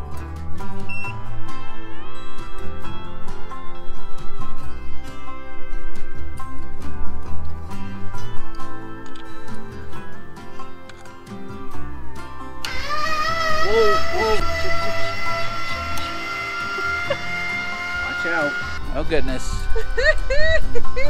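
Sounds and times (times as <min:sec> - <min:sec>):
guitar background music: 0:00.0 - 0:21.0
motor whine: 0:12.6 - 0:18.9
person exclaiming: 0:13.6 - 0:14.4.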